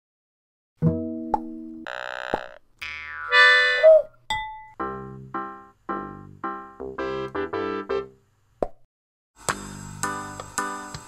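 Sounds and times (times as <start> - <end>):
cartoon pops and boings: 1.3 - 4.0.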